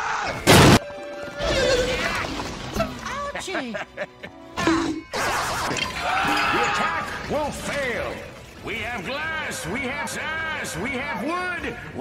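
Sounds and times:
cartoon explosion blast: 0:00.4 - 0:02.5.

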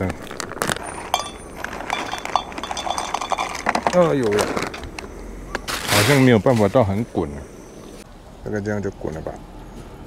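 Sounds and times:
plastic snack bag crinkling: 0:00.0 - 0:05.0.

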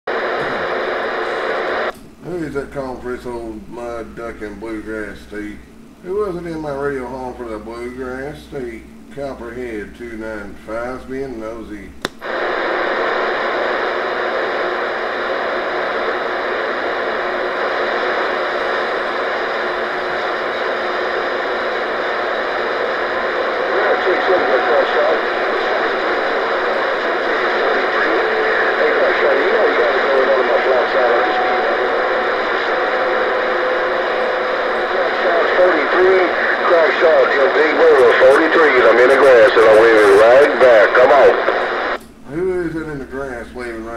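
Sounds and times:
radio static: 0:00.1 - 0:02.4, 0:12.2 - 0:42.5
faint warbling radio voices: 0:13.0 - 0:42.0.

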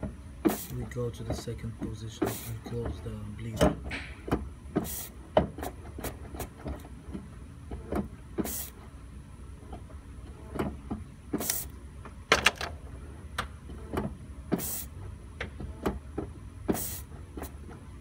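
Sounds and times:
steady low hum: 0:00.0 - 0:18.0
short hiss: 0:04.8 - 0:05.1, 0:08.4 - 0:08.8, 0:14.6 - 0:14.9, 0:16.7 - 0:17.1
sharp clicks and knocks: 0:10.5 - 0:14.7.

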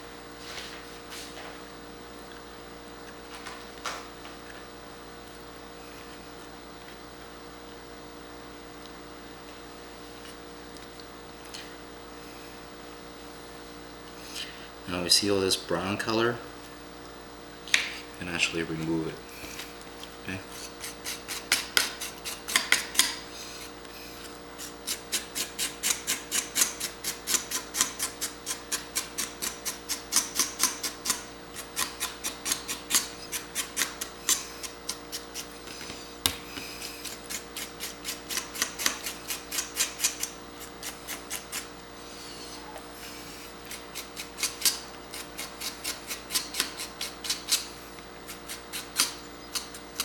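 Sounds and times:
knife scraping on cutting board: 0:20.5 - 0:30.0, 0:30.8 - 0:50.0.

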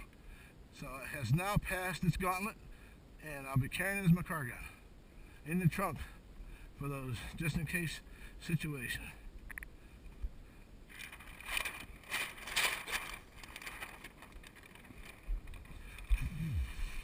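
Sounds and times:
paper rustling and crackling: 0:10.9 - 0:16.2
wind on microphone: 0:15.3 - 0:17.0
short low vocal sound: 0:16.0 - 0:17.0.

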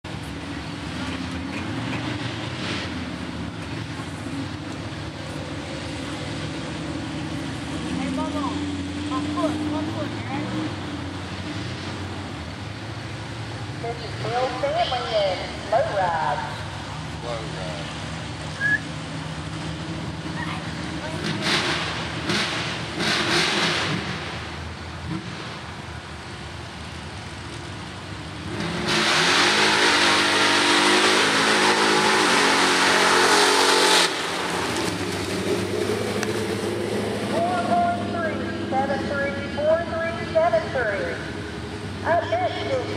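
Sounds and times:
truck engine idling and revving: 0:00.0 - 0:42.9.

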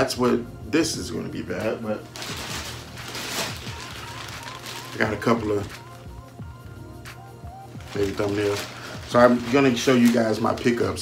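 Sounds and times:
quiet background music: 0:00.0 - 0:11.0
plastic bags rustling: 0:01.9 - 0:06.1, 0:07.7 - 0:11.0.

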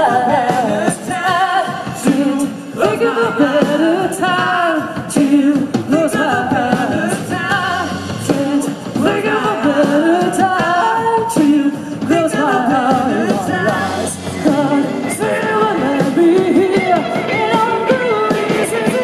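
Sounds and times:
rock band playing: 0:00.0 - 0:19.0
steady drum beat: 0:00.0 - 0:19.0
sung vocals: 0:00.0 - 0:19.0.

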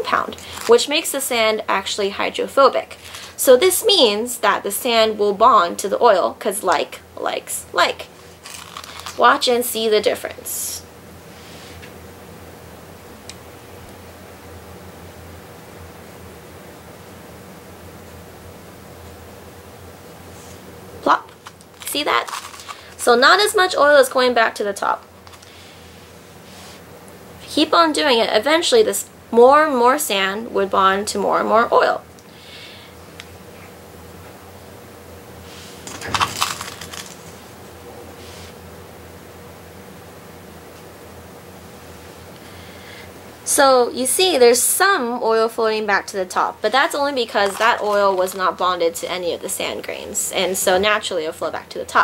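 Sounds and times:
even hiss: 0:25.4 - 0:26.9, 0:38.0 - 0:38.6.

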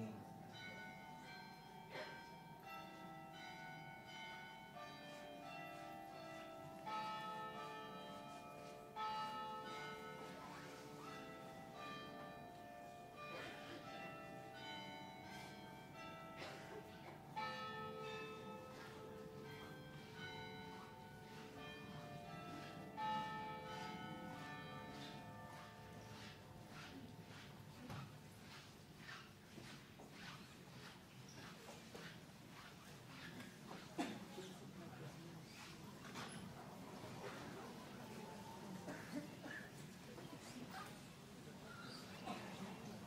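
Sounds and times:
church bells ringing: 0:00.0 - 0:29.2.

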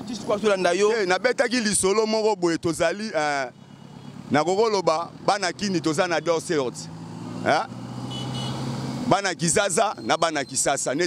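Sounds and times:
man speaking animatedly: 0:00.0 - 0:03.6, 0:04.3 - 0:07.7, 0:09.1 - 0:11.0.

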